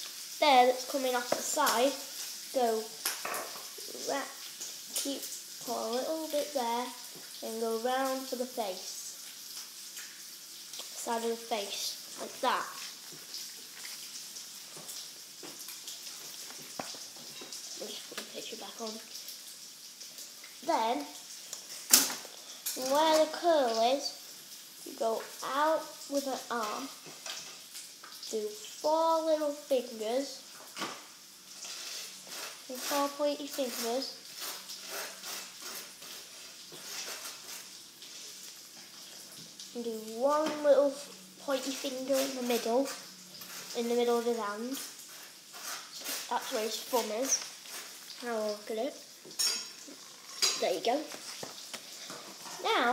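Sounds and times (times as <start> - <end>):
faint hiss: 0.0 - 52.9.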